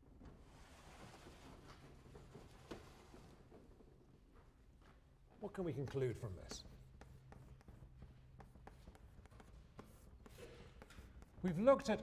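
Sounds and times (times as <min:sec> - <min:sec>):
chalk on blackboard taps and scrapes: 0:05.8 - 0:12.0.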